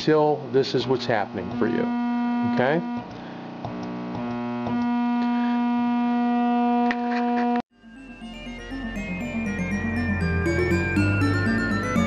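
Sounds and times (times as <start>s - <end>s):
buzzing oscillator tone: 1.4s - 3.1s, 3.7s - 7.6s.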